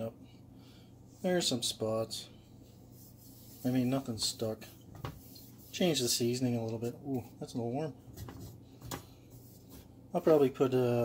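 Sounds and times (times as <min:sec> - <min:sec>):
low steady hum: 0:00.0 - 0:11.0
hand rubbing skillet: 0:02.5 - 0:06.2.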